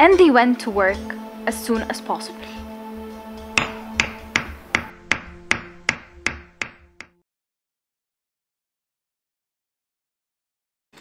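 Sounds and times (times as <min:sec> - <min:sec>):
held music notes: 0:00.0 - 0:07.2
ringing hammer strikes: 0:03.4 - 0:07.1.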